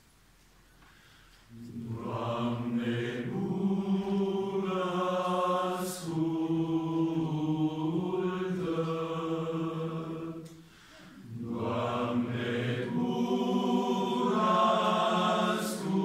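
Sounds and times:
mixed choir singing: 1.5 - 16.0.

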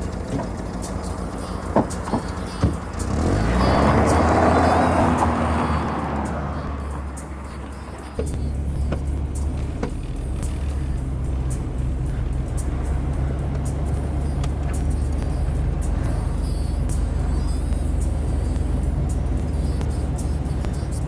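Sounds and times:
car cabin drone: 0.0 - 21.0
car speeding past: 0.0 - 21.0
music playing: 0.0 - 21.0.

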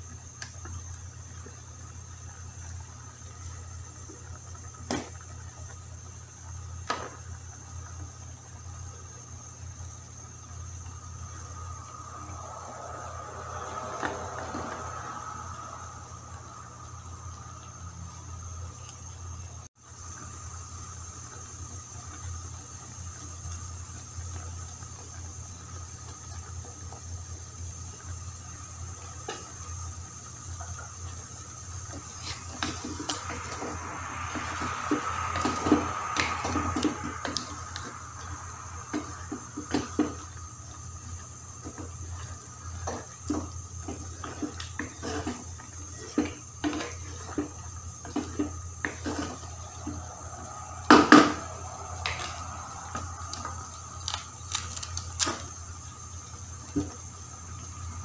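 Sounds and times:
bubbling liquid: 0.0 - 58.0
steady low hum: 0.0 - 58.0.

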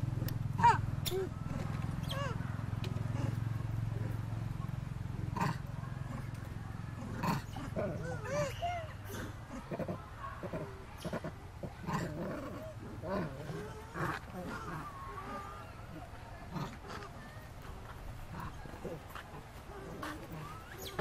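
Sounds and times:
macaques cooing and squealing: 0.2 - 4.2, 7.0 - 17.6, 18.3 - 21.0.

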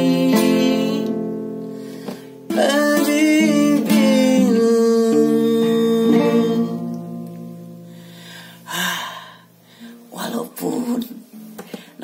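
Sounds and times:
classical guitar chord ringing: 0.0 - 8.6.

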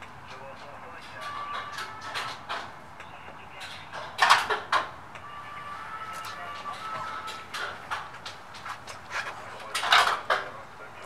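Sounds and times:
knocks and rattles: 1.1 - 2.8, 9.6 - 10.5.

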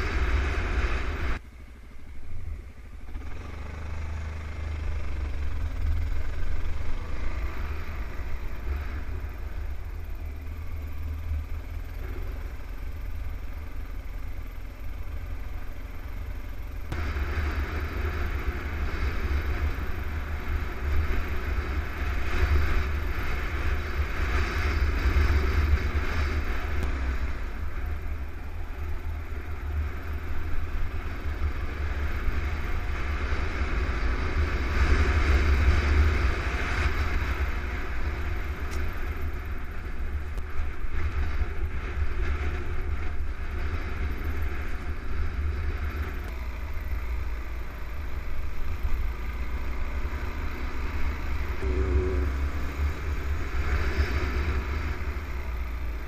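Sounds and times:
motorcycle engine running: 0.0 - 56.0
wind rumble on microphone: 0.0 - 56.0.

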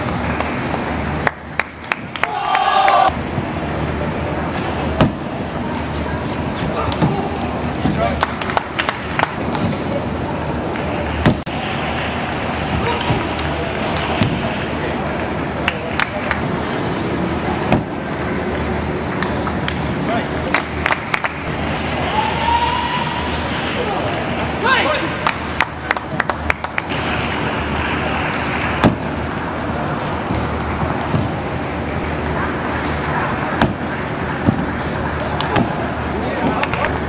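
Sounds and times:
murmur of voices: 2.2 - 37.0.

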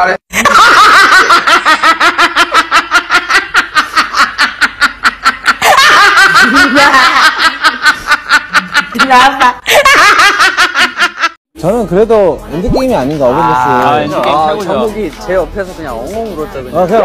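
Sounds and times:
person laughing: 0.4 - 11.4.

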